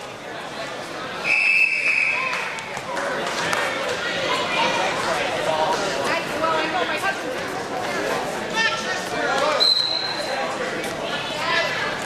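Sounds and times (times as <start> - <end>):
crowd talking and calling out: 0.0 - 12.0
high whistle blast: 1.2 - 2.3.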